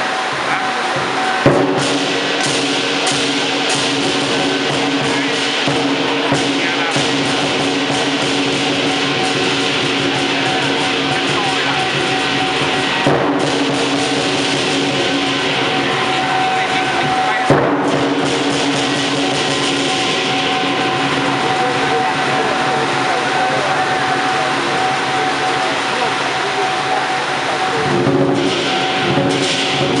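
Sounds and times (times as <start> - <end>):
lion dance music: 0.0 - 30.0.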